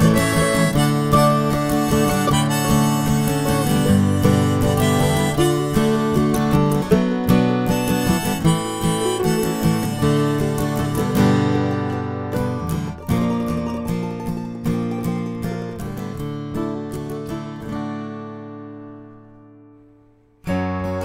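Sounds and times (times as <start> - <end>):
harmonica melody: 0.0 - 16.0
strummed acoustic guitar: 0.0 - 21.0.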